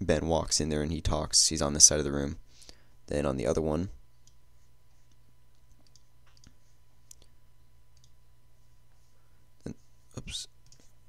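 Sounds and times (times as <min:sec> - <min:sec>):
low steady hum: 0:00.0 - 0:11.0
computer mouse clicks: 0:05.0 - 0:07.3, 0:07.9 - 0:08.2, 0:10.6 - 0:10.9.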